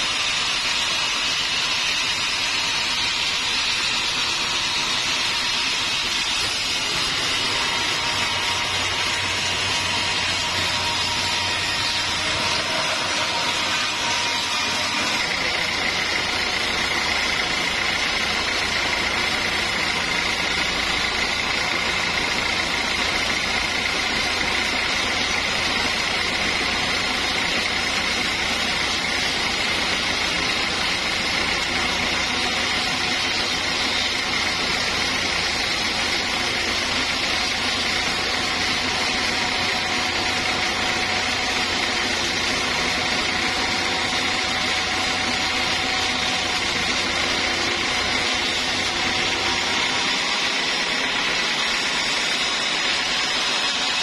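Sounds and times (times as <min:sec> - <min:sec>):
band sawmill drone and whine: 0:00.0 - 0:54.0.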